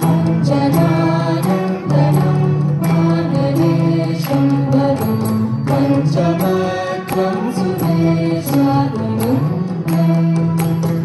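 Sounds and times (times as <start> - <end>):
voices singing melody: 0.0 - 10.5
veena ensemble playing: 0.0 - 11.0.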